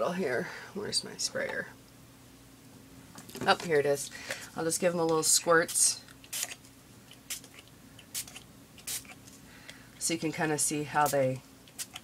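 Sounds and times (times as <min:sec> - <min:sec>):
spray bottle hissing: 0:08.1 - 0:09.2.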